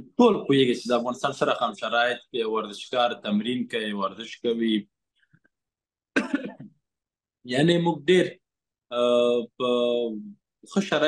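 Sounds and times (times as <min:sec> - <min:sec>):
man coughing: 0:06.2 - 0:06.7.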